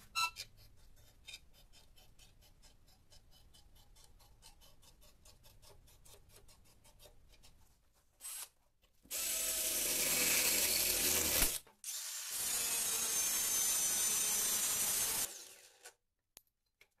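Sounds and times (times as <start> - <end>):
angle grinder cutting steel: 9.1 - 15.8.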